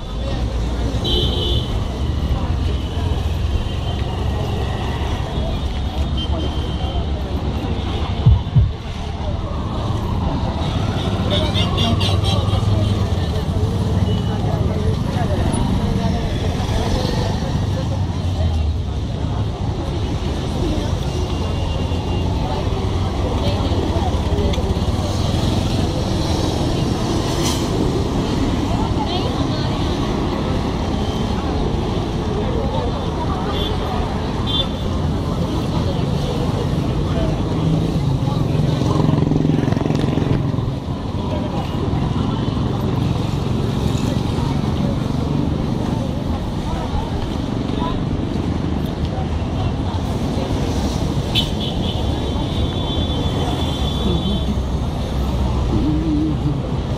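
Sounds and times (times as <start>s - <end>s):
people talking: 0.0s - 56.9s
road traffic: 0.0s - 56.9s.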